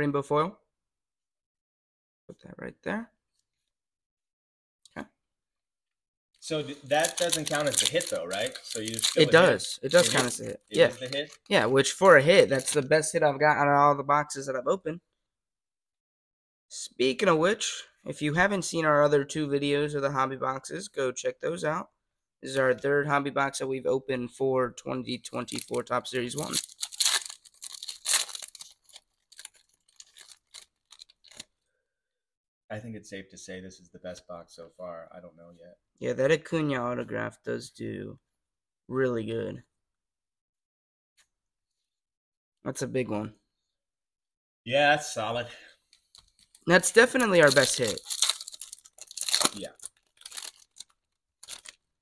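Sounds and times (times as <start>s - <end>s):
foil wrapper tearing and crinkling: 6.9s - 12.8s, 25.5s - 25.8s, 26.4s - 31.6s, 46.1s - 51.9s.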